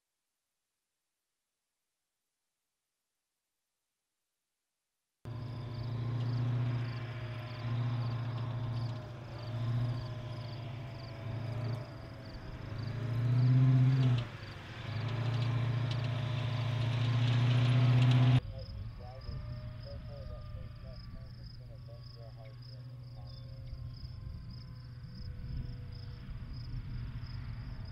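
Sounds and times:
crickets chirping: 5.3s - 27.9s
tracked vehicle engine humming: 5.3s - 27.9s.

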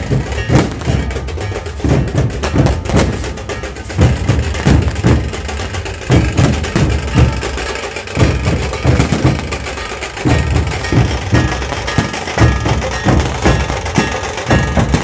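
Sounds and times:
barrel drums beaten with sticks: 0.0s - 15.0s.

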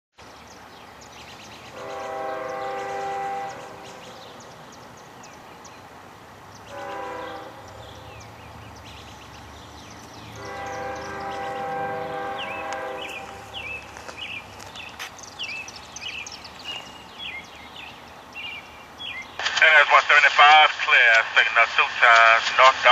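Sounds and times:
locomotive air horn blasts: 1.7s - 4.0s, 6.7s - 7.8s, 10.4s - 13.6s.

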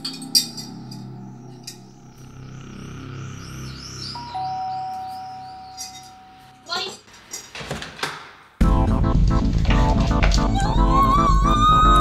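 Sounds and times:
faint high chirping: 0.4s - 6.7s
two-tone doorbell ringing: 4.2s - 6.6s
low background music: 8.6s - 12.0s.

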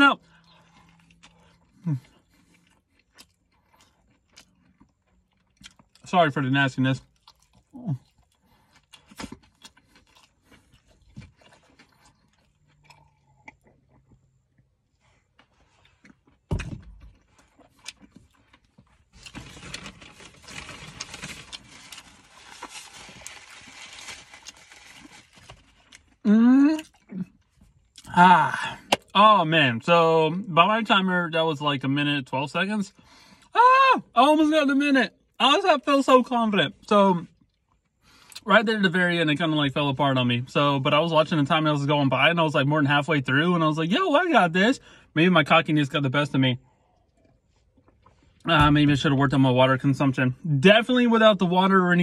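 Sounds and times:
person chewing with wet smacks: 0.3s - 6.1s, 7.0s - 16.5s, 17.1s - 19.3s
paper crinkling and rustling: 19.1s - 26.0s.

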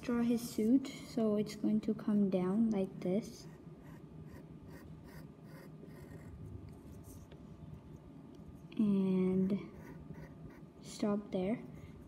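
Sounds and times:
pencil scratching on paper: 3.3s - 7.3s, 8.6s - 12.0s.

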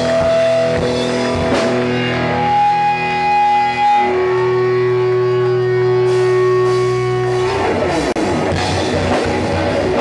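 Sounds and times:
distorted electric guitars and bass: 0.0s - 10.0s.

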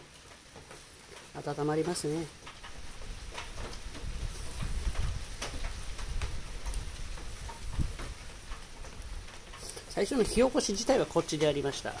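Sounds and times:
firewood crackling and popping: 0.0s - 12.0s
rain pattering: 0.0s - 12.0s.

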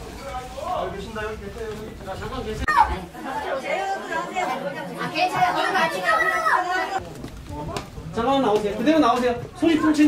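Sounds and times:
several people talking at once: 0.0s - 10.0s.

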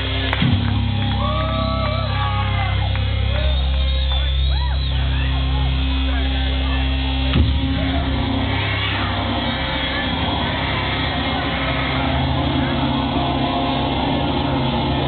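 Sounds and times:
low bass drones: 0.0s - 15.0s.

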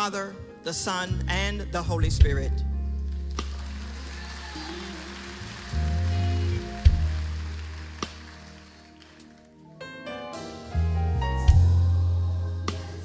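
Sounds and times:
keyboard chords over bass note: 0.0s - 3.5s, 9.8s - 13.0s.

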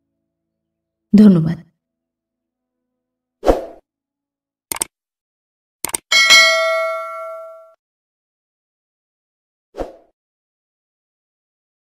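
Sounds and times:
quick clicks: 4.7s - 4.9s, 5.8s - 6.1s
bell ding: 6.1s - 7.8s.

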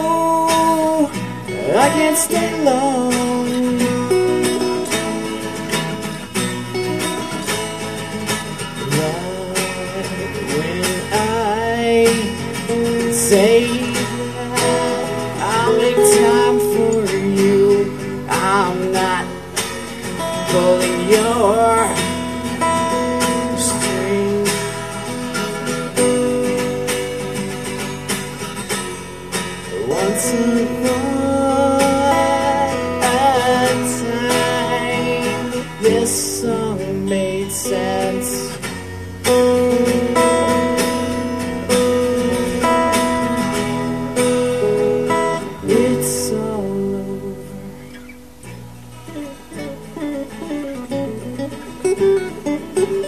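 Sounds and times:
acoustic guitar music: 0.0s - 53.0s.

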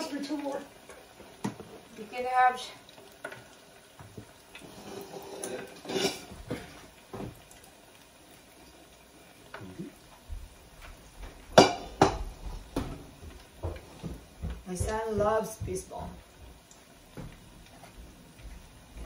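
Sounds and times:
spoon and metal pot clinking: 5.3s - 6.3s.

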